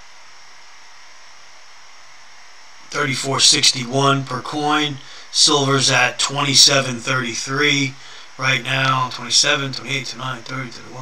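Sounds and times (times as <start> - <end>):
low background hiss: 0.0 - 11.0.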